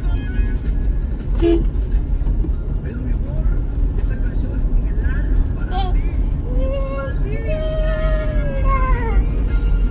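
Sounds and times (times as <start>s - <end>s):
car road rumble: 0.0s - 9.9s.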